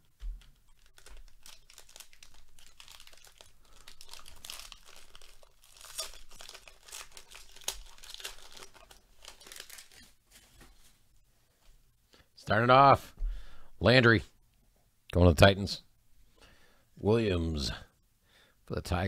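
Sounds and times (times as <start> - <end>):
foil wrapper tearing and crinkling: 0.4 - 10.2.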